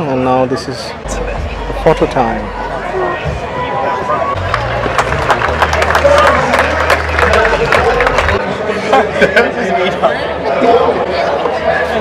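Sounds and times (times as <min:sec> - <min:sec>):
spectators chattering: 0:00.0 - 0:12.0
music playing: 0:01.0 - 0:08.7.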